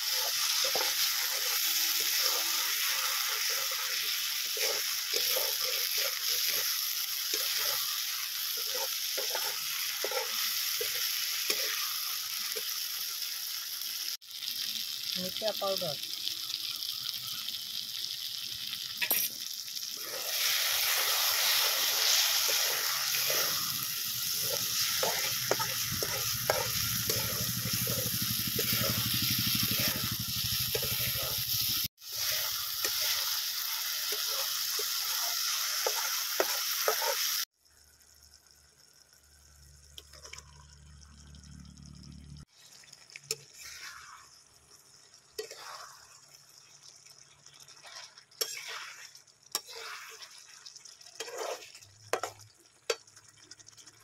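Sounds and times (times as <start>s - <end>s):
spatula scraping a metal pan: 0.0s - 11.9s, 20.0s - 31.4s, 45.4s - 46.1s, 47.7s - 50.5s, 51.1s - 52.4s
masala sizzling in a pan: 0.0s - 54.0s.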